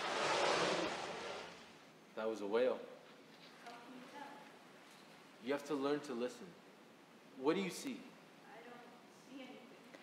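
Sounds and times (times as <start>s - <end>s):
ocean wave breaking: 0.0s - 1.8s.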